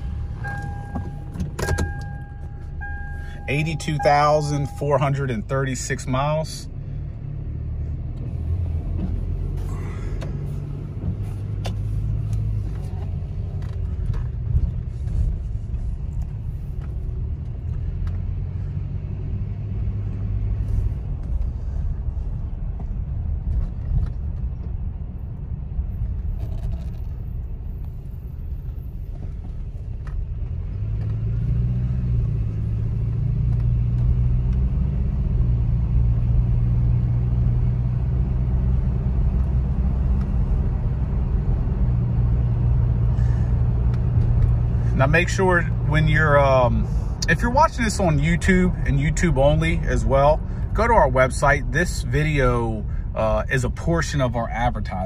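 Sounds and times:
engine and road noise drone: 0:00.0 - 0:55.0.

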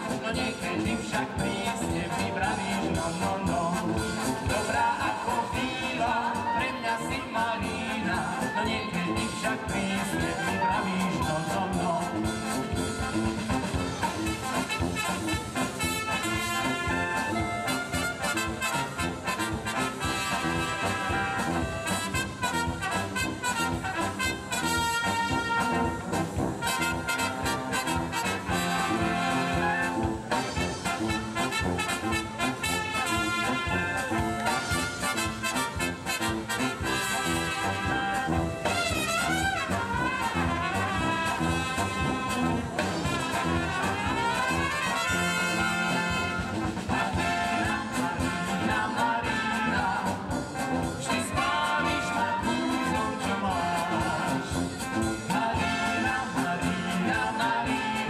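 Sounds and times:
brass band playing: 0:00.0 - 0:58.0.

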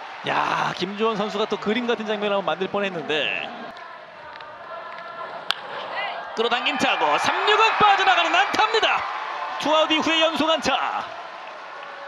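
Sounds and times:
stadium crowd noise: 0:00.0 - 0:12.0
wooden bat hitting baseball: 0:04.3 - 0:05.7.

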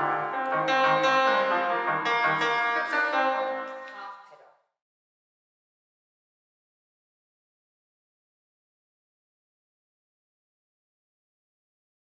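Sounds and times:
grand piano playing: 0:00.0 - 0:04.1.

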